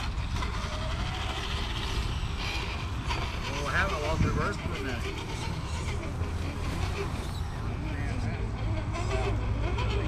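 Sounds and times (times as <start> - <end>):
toy car motor whirring: 0.0 - 7.6.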